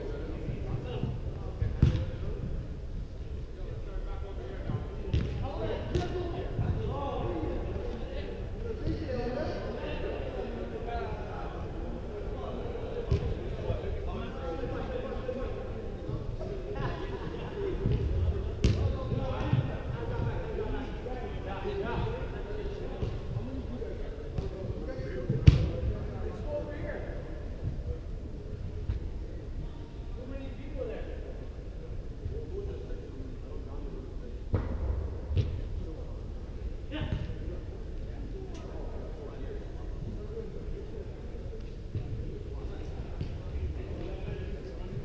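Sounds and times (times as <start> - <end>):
faint players' voices: 0.0 - 45.0
soccer ball kicks echoing: 0.4 - 2.6, 4.6 - 7.0, 13.1 - 13.4, 17.8 - 20.2, 25.3 - 25.9, 34.5 - 35.7, 37.0 - 37.4.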